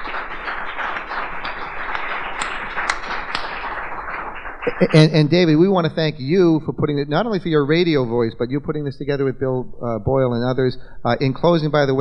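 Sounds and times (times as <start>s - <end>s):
audience applauding: 0.0s - 5.7s
man speaking: 4.7s - 12.0s.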